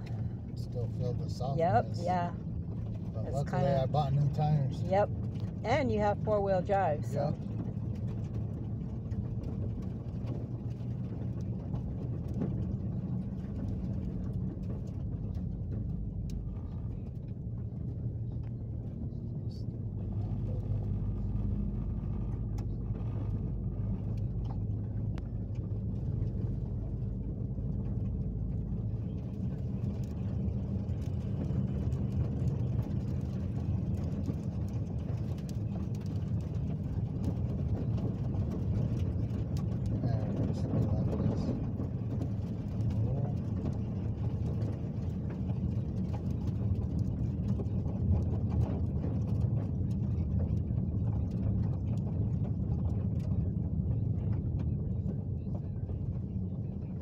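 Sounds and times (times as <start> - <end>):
vehicle engine and tyre rumble: 0.0 - 57.0.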